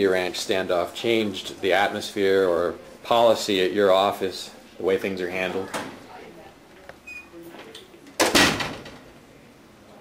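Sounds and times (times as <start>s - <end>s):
wooden door shutting: 8.2s - 9.1s.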